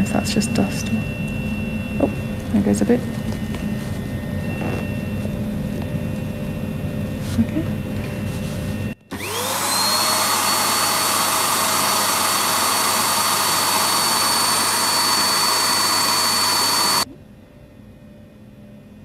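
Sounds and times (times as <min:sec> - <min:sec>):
small vacuum whining and hissing: 0:00.0 - 0:17.1.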